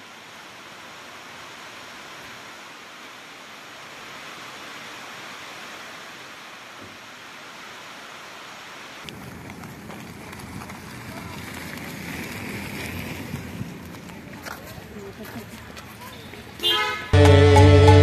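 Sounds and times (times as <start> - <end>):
rain on a metal roof: 0.0 - 17.4.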